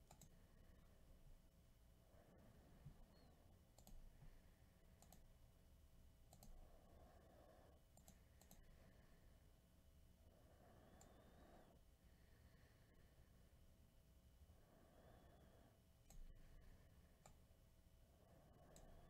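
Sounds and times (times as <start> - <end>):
faint clicks: 0.0 - 0.4, 3.1 - 4.0, 5.0 - 5.3, 6.3 - 6.6, 7.9 - 8.7, 16.0 - 16.3, 17.2 - 17.4.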